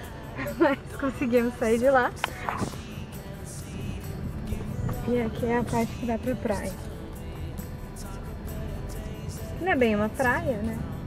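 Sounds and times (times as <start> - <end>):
faint music: 0.0 - 11.0
car rumbling on dirt track: 3.6 - 6.5.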